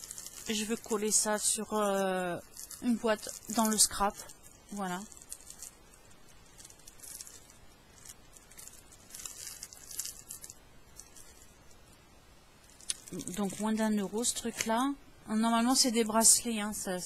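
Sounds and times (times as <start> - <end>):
packaging rustling and crinkling: 0.0 - 12.0, 12.6 - 15.0.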